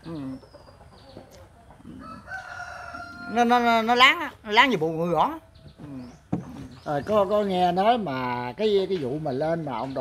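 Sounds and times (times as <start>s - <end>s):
chickens clucking: 0.0s - 10.0s
rooster crowing: 2.0s - 3.6s.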